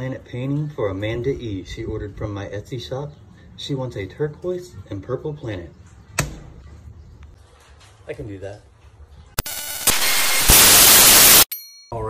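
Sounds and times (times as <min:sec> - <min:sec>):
loud even hiss: 0:09.4 - 0:11.5.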